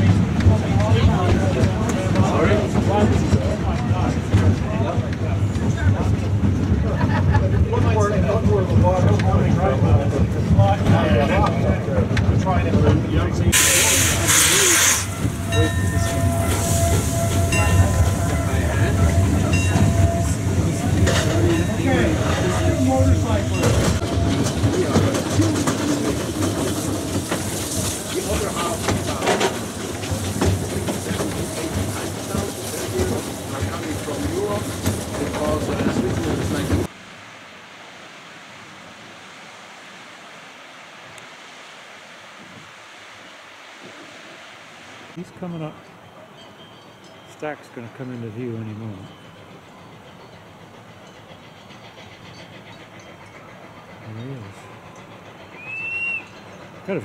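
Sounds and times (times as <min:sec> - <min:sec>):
train wheels rumbling on track: 0:00.0 - 0:37.0, 0:45.1 - 0:57.0
faint outdoor hush: 0:13.2 - 0:57.0.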